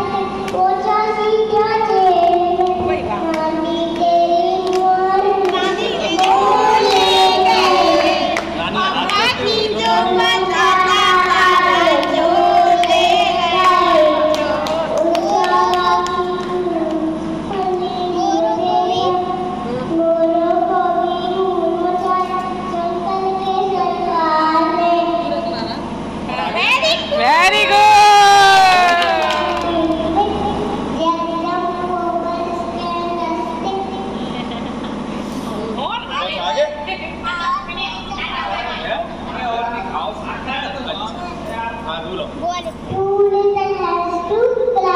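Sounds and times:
child singing into a microphone: 0.0s - 8.4s, 9.3s - 25.5s, 29.6s - 34.4s, 42.8s - 44.9s.

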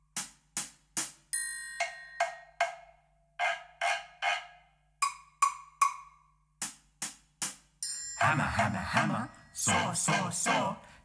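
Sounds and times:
mallet knocking wood block: 2.2s - 6.2s.

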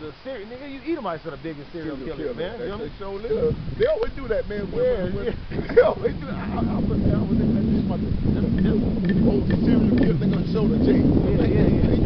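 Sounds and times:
vehicle passing rumble: 1.6s - 12.0s.

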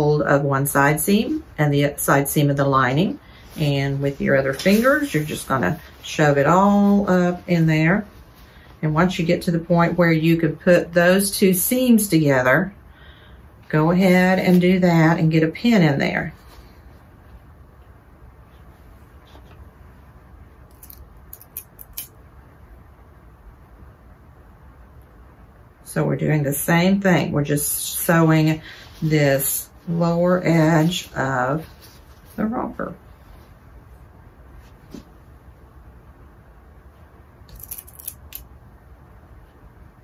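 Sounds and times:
low room hum: 0.0s - 40.0s
fabric rustling: 0.8s - 10.0s, 16.2s - 20.7s, 28.4s - 35.8s.

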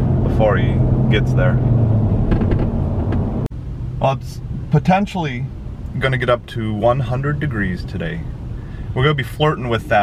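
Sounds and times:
car cabin hum: 0.0s - 10.0s
car road and engine rumble: 0.0s - 10.0s.

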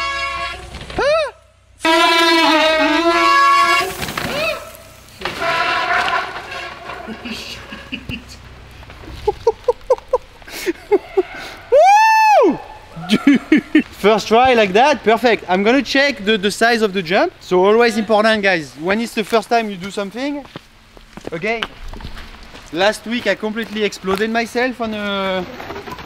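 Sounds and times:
men hollering and whooping: 10.8s - 13.9s.

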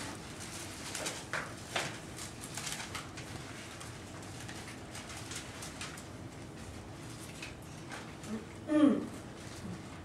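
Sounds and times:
paper pages rustling: 0.0s - 8.2s
low room hum: 0.0s - 10.0s.

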